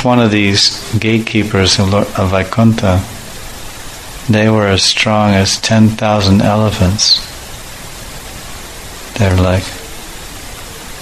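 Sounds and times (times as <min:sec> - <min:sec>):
person speaking: 0:00.0 - 0:03.3, 0:04.2 - 0:07.4, 0:09.1 - 0:10.1
background hiss: 0:00.0 - 0:11.0.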